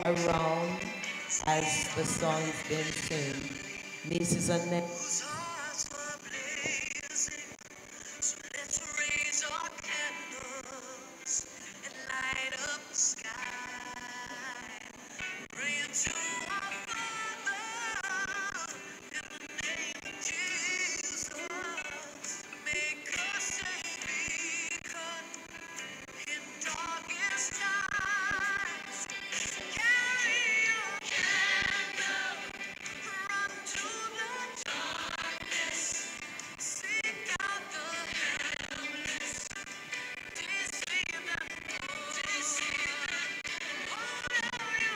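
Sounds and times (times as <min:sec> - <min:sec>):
musical accompaniment: 0:00.0 - 0:09.3
person singing with vibrato: 0:00.0 - 0:44.9.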